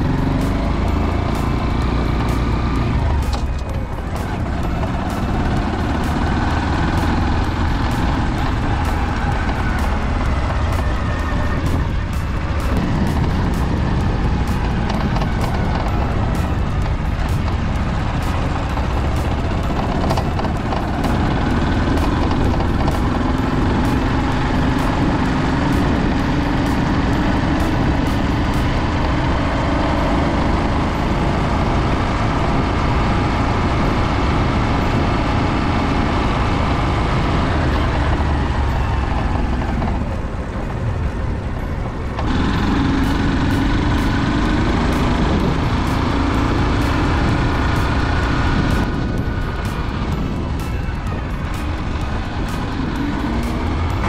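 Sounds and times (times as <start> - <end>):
motorcycle engine drone: 0.0 - 54.0
wind rushing over microphone: 10.4 - 20.8.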